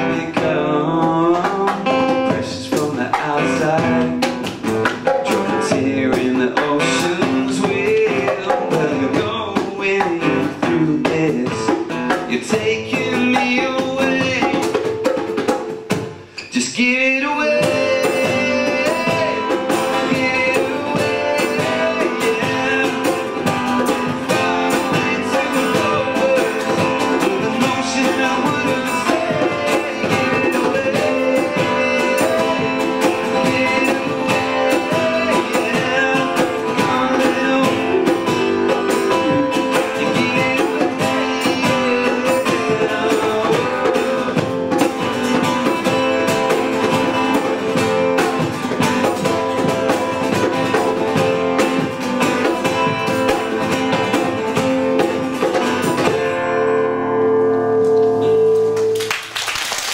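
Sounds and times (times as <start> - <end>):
acoustic guitars strumming: 0.0 - 59.3.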